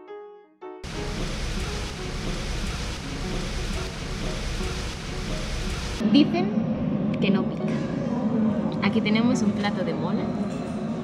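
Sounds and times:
potatoes sizzling in oil: 0.8 - 6.0.

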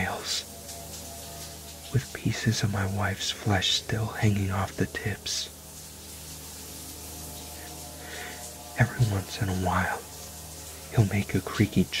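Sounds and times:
low steady drone: 0.0 - 12.0
shower spray hissing: 0.0 - 12.0.

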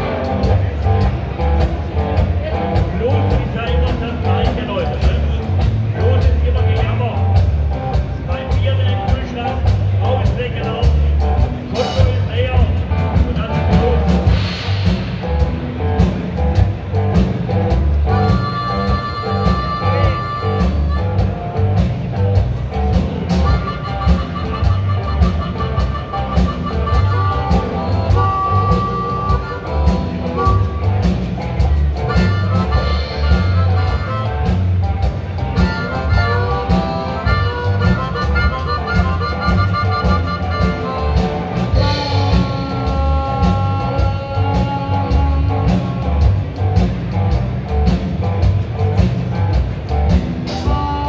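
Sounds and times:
rock band playing: 0.0 - 51.0
harmonica long notes: 17.5 - 47.3, 50.5 - 51.0.

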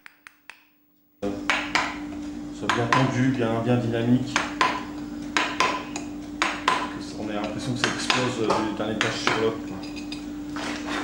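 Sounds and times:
chisel tapping on stone: 4.4 - 4.8.

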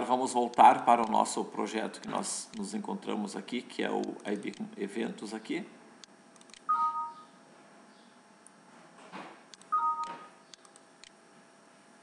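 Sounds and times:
two-tone electronic beeps: 6.7 - 7.3, 9.7 - 10.3.

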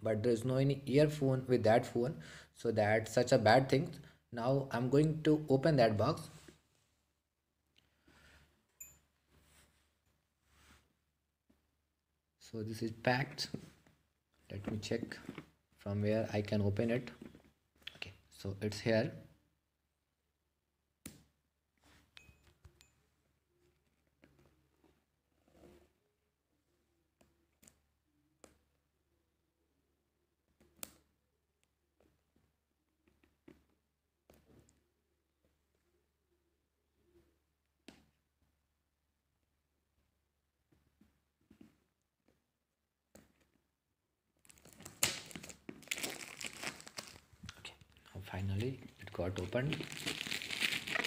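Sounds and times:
faint handling sounds: 6.2 - 11.7, 13.4 - 15.9
plastic wrapping crinkling and tearing: 44.4 - 47.8, 48.6 - 51.0.

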